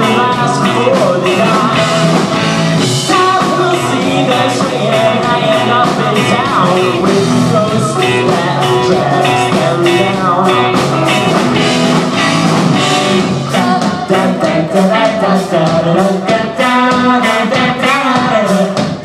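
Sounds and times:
person singing: 0:00.0 - 0:11.4, 0:13.2 - 0:19.0
electric bass: 0:00.0 - 0:16.3
drum kit steady beat: 0:00.0 - 0:19.0
electric guitars: 0:00.0 - 0:19.0.

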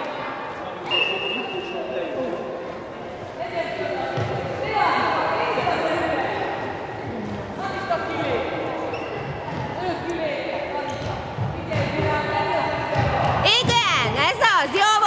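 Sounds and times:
shoes squeaking on court: 0:08.8 - 0:10.0.

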